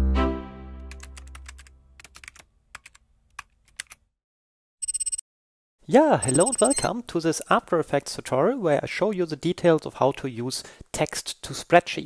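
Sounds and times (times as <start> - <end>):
keyboard typing clicks: 4.8 - 5.2, 6.2 - 6.9.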